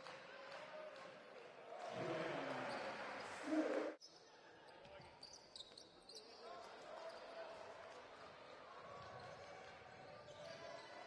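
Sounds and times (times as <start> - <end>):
low voices in a hall: 0.0 - 5.2.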